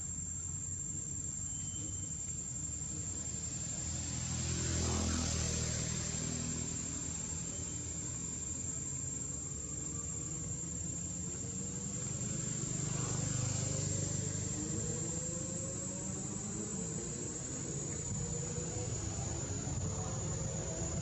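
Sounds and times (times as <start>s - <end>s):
high-pitched insect drone: 0.0s - 21.0s
motor vehicle passing by: 2.6s - 21.0s.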